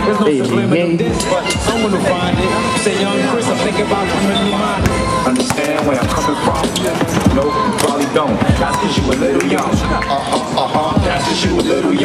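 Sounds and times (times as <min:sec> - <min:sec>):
hip hop track with rapping: 0:00.0 - 0:12.0
basketball bouncing on pavement: 0:04.8 - 0:10.1.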